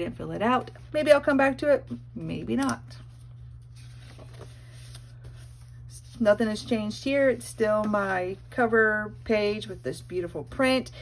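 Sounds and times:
steady low hum: 0.0s - 11.0s
notebook pages turning: 3.1s - 6.7s.

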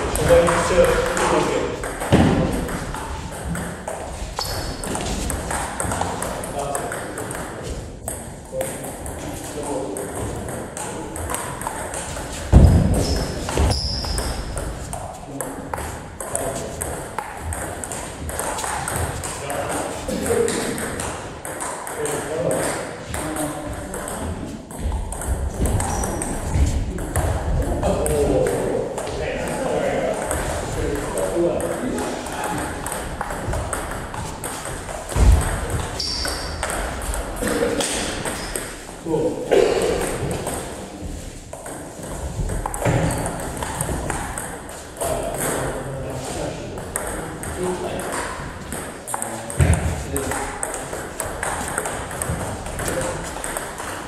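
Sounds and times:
people talking: 0.0s - 2.6s, 5.8s - 7.8s, 8.5s - 11.8s, 14.9s - 16.9s, 18.3s - 21.1s, 21.8s - 24.5s, 25.6s - 33.6s, 37.4s - 38.1s, 39.0s - 41.1s, 45.0s - 48.4s, 49.1s - 51.0s, 51.7s - 53.6s
table tennis balls clicking: 0.1s - 38.9s, 41.6s - 45.7s, 46.8s - 54.0s.

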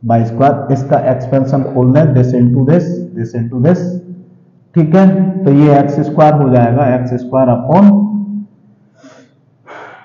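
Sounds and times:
man speaking: 0.0s - 8.4s
breathy intake of breath: 8.9s - 10.0s.

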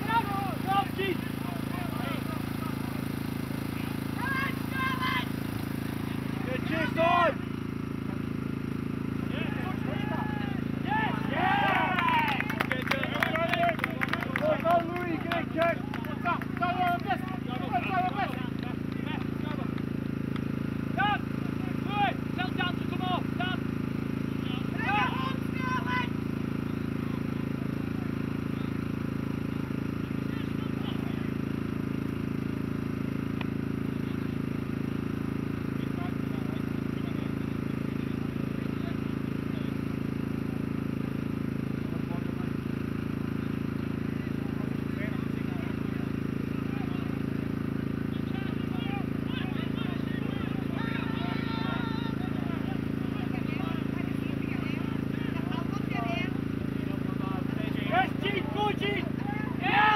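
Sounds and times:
players shouting: 0.0s - 2.9s, 3.8s - 5.5s, 6.2s - 7.5s, 9.2s - 19.7s, 20.9s - 23.7s, 24.4s - 26.3s, 48.3s - 55.9s, 57.1s - 59.9s
low outdoor rumble: 0.0s - 59.9s.

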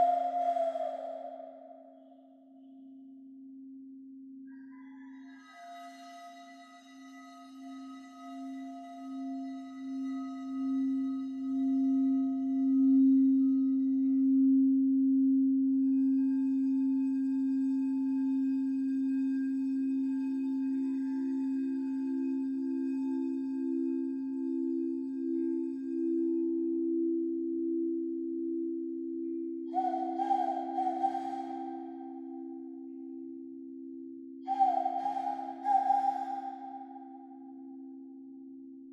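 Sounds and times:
singing bowls humming: 0.0s - 2.0s, 4.6s - 38.5s
whistle blown into cupped hands: 0.0s - 2.2s, 29.7s - 33.2s, 34.5s - 38.0s.

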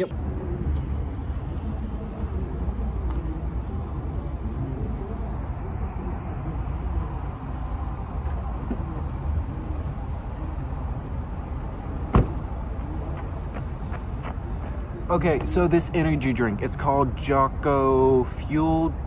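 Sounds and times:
steady low rumble: 0.0s - 18.4s
car engine driving slowly: 0.2s - 18.9s.

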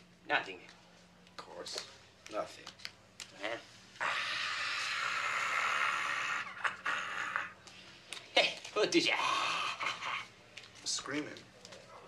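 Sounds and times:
light clicks of cards: 0.6s - 3.4s, 10.5s - 12.0s
playing cards shuffled by hand: 1.7s - 3.4s.

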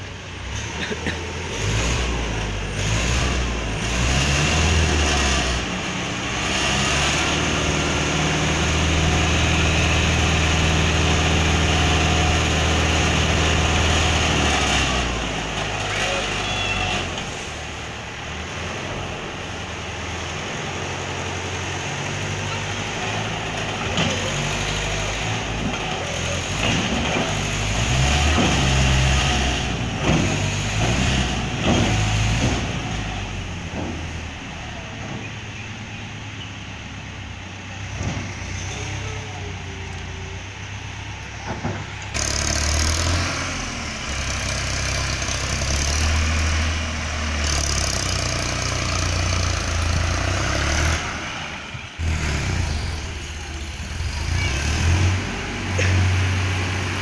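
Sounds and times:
tractor engine running: 0.0s - 57.0s
trailer knocks: 25.4s - 35.5s, 37.8s - 38.7s, 41.4s - 42.3s.

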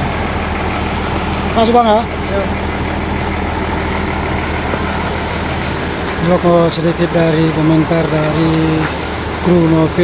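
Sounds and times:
bus diesel engine idling: 0.0s - 10.0s.

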